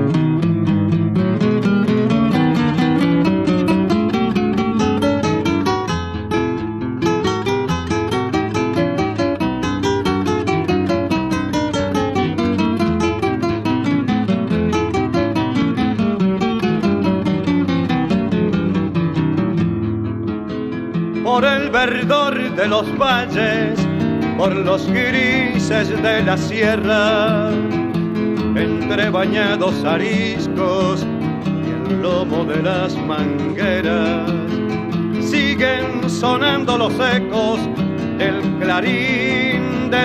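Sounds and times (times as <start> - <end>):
acoustic guitar playing: 0.0 - 40.0.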